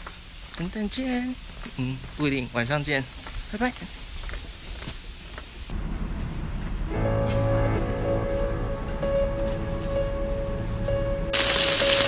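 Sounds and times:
faint outdoor background noise: 0.0s - 12.0s
heavy rain rumble: 5.7s - 9.0s.

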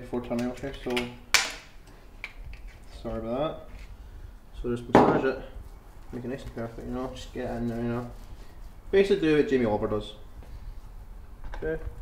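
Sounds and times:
glass bottle knocking on cutting board: 4.9s - 5.2s.

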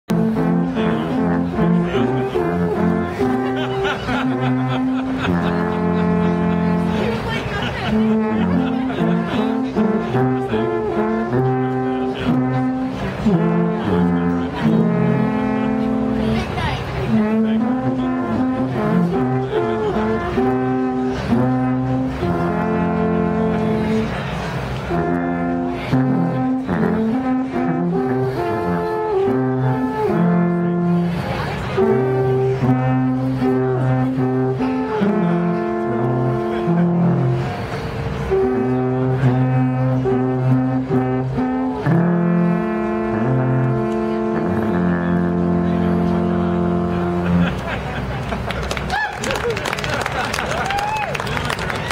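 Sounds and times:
alphorns playing in harmony: 0.1s - 51.9s
people's voices: 0.1s - 51.9s.

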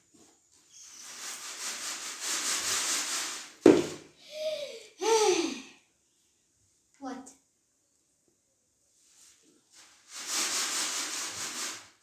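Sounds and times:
gravel shaken in a sieve: 0.8s - 3.6s, 9.1s - 12.0s
sharp knock: 3.6s - 4.0s.

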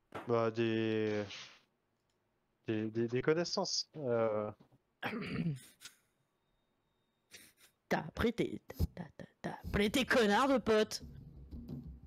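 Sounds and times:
person clearing throat: 5.0s - 5.7s.

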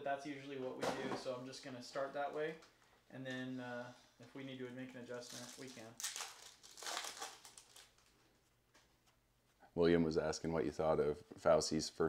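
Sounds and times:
foil wrapper tearing and crinkling: 5.2s - 8.1s.

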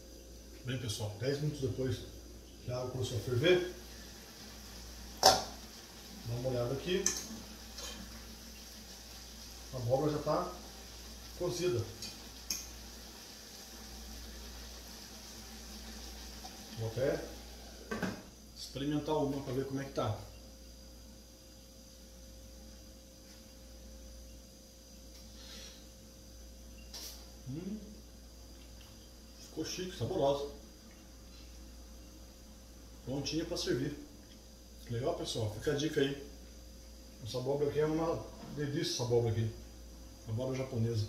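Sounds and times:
faint constant tone: 0.0s - 41.0s
soft hiss: 0.0s - 41.0s.

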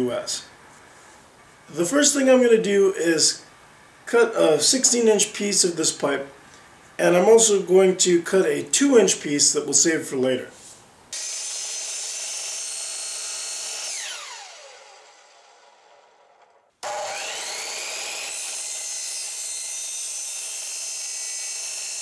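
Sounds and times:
electric miter saw cutting pipe: 11.1s - 22.0s.

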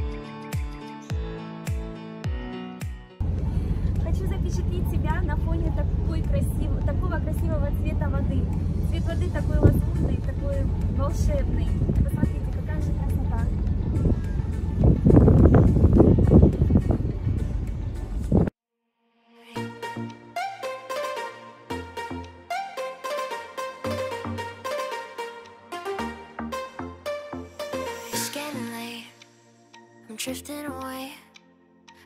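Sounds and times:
boat engine rumble: 3.2s - 18.5s
voices: 3.3s - 13.8s
wind on microphone: 8.5s - 18.5s.

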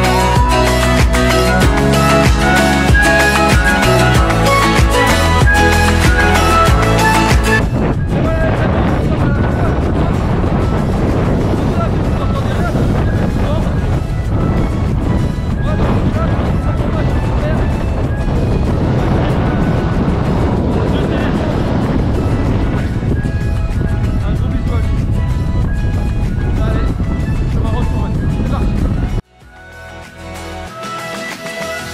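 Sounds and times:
man's voice: 0.0s - 14.6s, 15.5s - 23.2s, 23.8s - 25.2s, 26.4s - 29.1s
wind buffeting microphone: 0.0s - 29.2s
background music: 0.0s - 31.9s.

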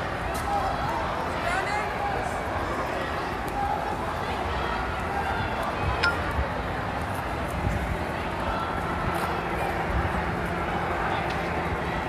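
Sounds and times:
faint crowd voices: 0.0s - 12.0s
outdoor street noise: 0.0s - 12.0s.

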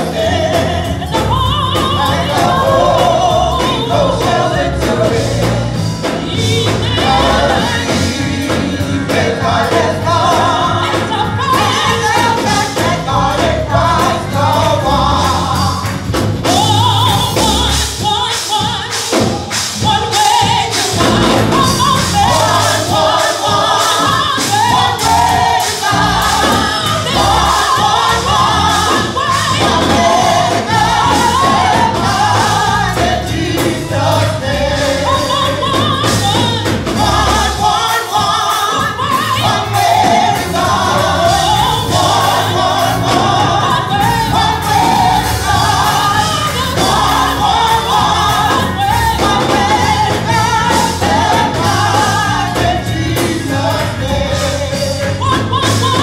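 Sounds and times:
group gospel singing: 0.0s - 56.0s
instrumental backing with beat: 0.0s - 56.0s.

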